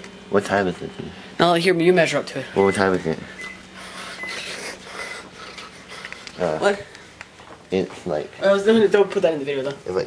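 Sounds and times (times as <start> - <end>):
faint steady hum: 0.0 - 10.0
person breathing close: 3.8 - 6.4.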